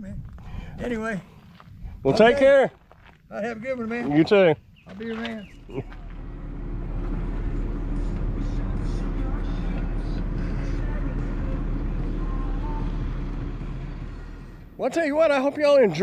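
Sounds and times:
car engine rumbling: 0:04.7 - 0:14.8.

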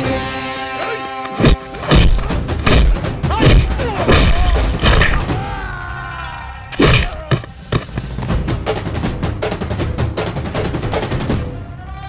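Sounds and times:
hit sound effects: 0:01.4 - 0:05.3
driving drum beats: 0:01.4 - 0:05.9, 0:06.7 - 0:11.5.

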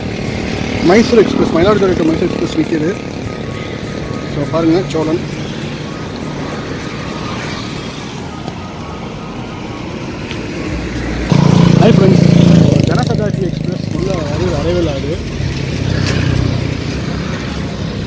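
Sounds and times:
motor scooter passing: 0:00.0 - 0:08.9, 0:10.8 - 0:18.0
road traffic noise: 0:00.0 - 0:18.0
vehicle engine revving: 0:11.3 - 0:17.3.

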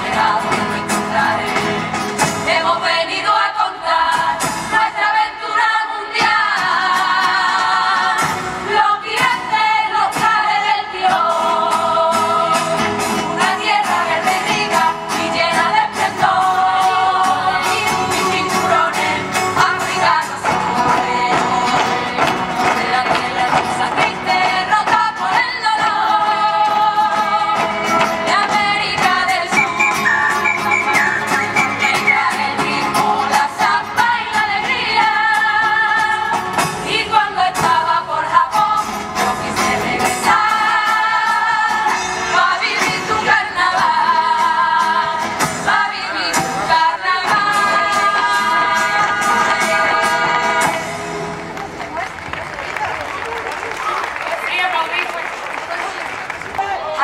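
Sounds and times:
women singing in chorus: 0:00.0 - 0:51.0
guitar: 0:00.0 - 0:55.0
drum strokes: 0:29.5 - 0:32.8.

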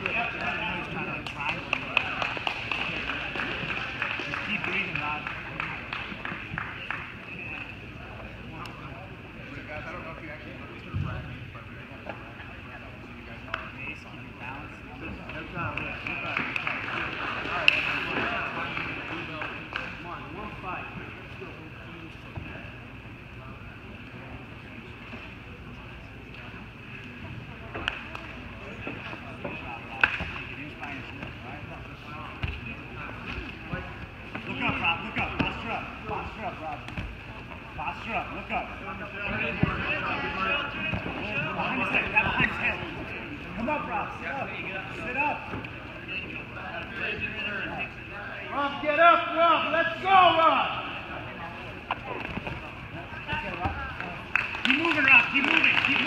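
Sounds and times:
sports hall background noise: 0:00.0 - 0:56.0
voices murmuring: 0:02.8 - 0:56.0.

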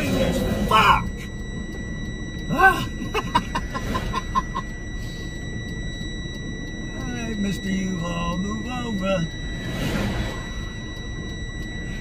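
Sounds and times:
diesel truck engine rumble: 0:00.0 - 0:07.2
road noise inside cab: 0:00.0 - 0:12.0
steady high-pitched tone: 0:00.0 - 0:12.0.

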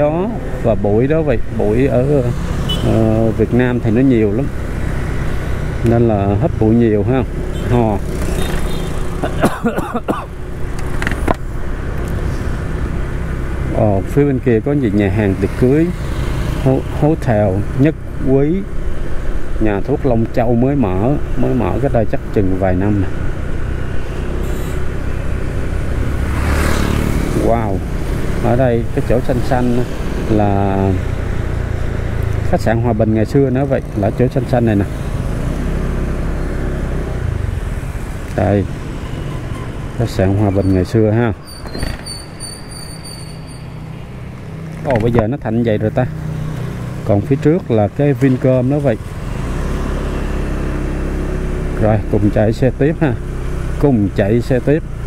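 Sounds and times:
road and wind noise: 0:00.0 - 0:55.0.

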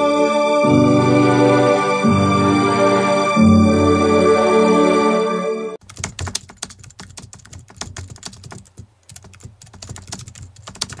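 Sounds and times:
electronic keyboard chord: 0:00.0 - 0:05.8
quick irregular clicks and taps: 0:05.8 - 0:11.0.

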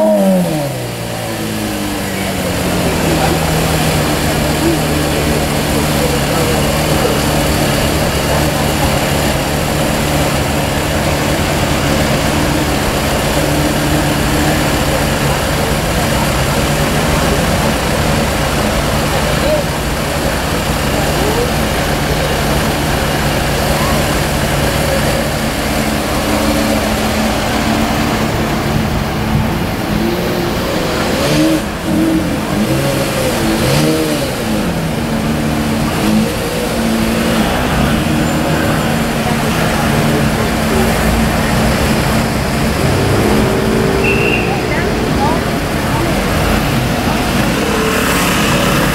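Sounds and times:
sports car engine idling: 0:00.0 - 0:48.9.

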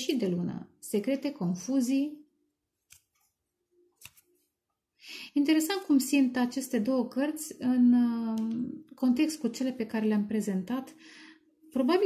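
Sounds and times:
card snapping from deck: 0:04.0 - 0:04.3.

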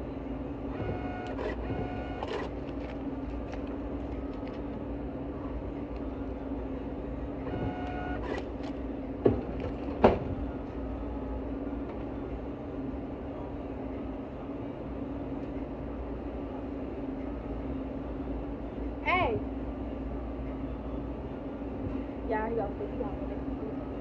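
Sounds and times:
steady low hum: 0:00.0 - 0:24.0
receipt printer whirring: 0:00.6 - 0:04.7, 0:07.3 - 0:08.8.

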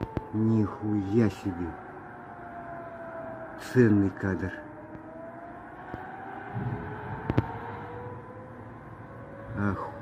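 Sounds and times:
distant air-raid siren wailing: 0:00.0 - 0:10.0.

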